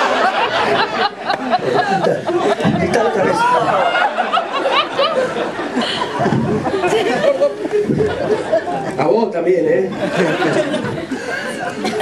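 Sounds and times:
audience chattering: 0.0s - 12.0s.

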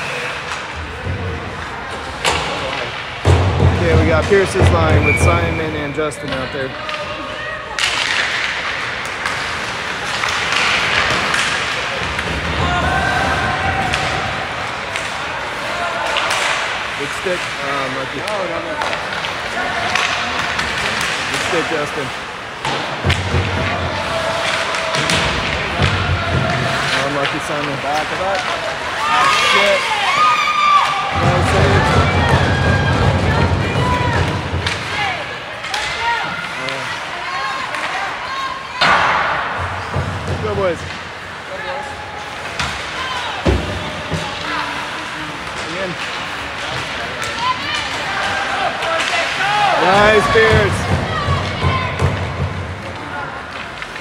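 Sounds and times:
hockey sticks and puck clacking: 0.0s - 54.0s
spectators chatter: 0.0s - 54.0s.

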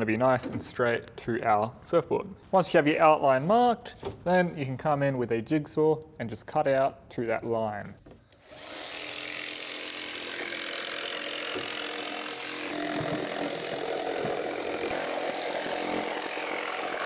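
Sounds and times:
jigsaw cutting wood: 8.4s - 17.0s.

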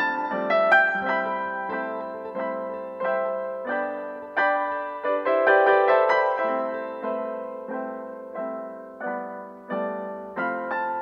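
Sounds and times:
slow piano music: 0.0s - 11.0s.

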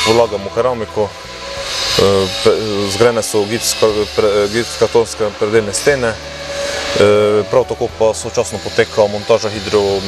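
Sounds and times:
man speaking: 2.0s - 6.2s, 7.0s - 10.0s.

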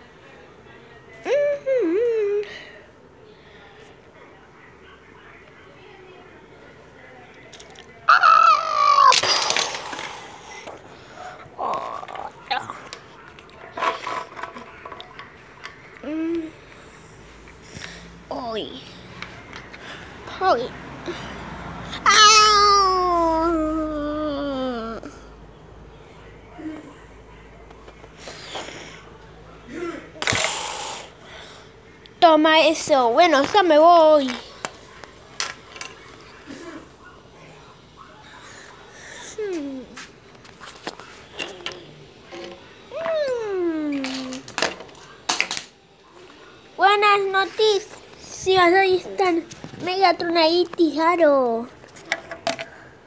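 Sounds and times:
child making fight sound effect: 8.1s - 9.6s, 22.0s - 23.7s
child's wavering voice: 22.0s - 25.2s, 42.9s - 44.4s.

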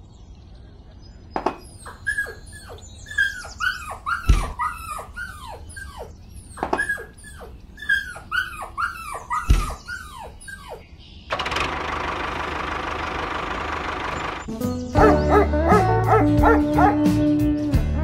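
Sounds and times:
loud thumps: 1.4s - 1.8s
dog yipping and whimpering: 1.5s - 10.9s, 15.0s - 17.0s
music: 14.5s - 18.0s.

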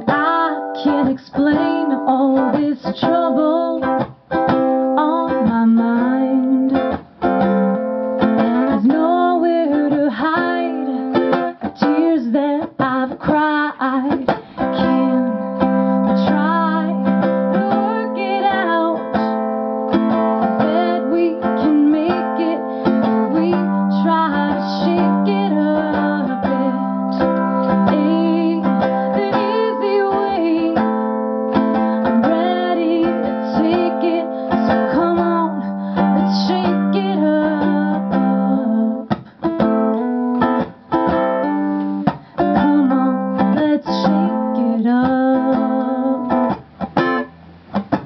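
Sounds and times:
woman singing: 0.0s - 7.0s, 8.3s - 39.3s, 41.4s - 46.6s
ukulele playing: 0.0s - 48.0s.

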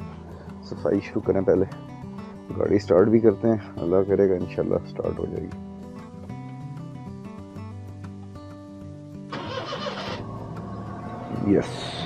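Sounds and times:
background music: 0.0s - 12.0s
van engine cranking and running: 9.3s - 12.0s.

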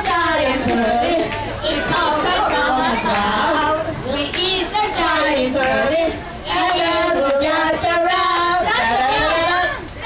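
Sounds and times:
children singing along: 0.0s - 9.9s
woman singing into a microphone: 0.0s - 10.0s.

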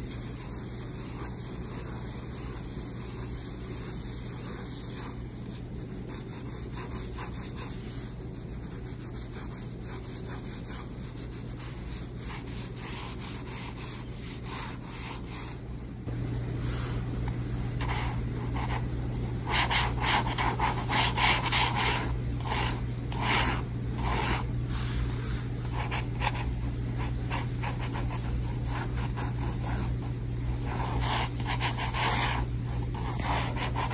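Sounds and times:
pencil scratching on paper: 0.0s - 15.8s, 16.6s - 33.9s.

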